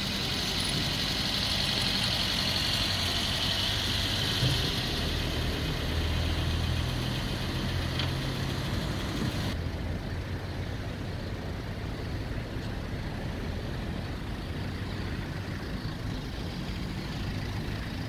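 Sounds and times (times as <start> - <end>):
car engines idling: 0.0 - 18.0
street traffic noise: 0.0 - 18.0.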